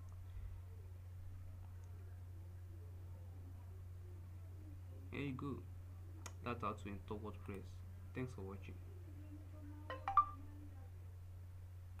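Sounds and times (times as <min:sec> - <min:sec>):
rising notification chime: 0:09.9 - 0:10.4.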